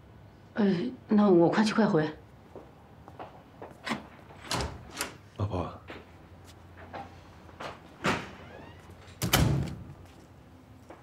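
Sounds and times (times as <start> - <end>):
door clunks: 8.0 - 9.9.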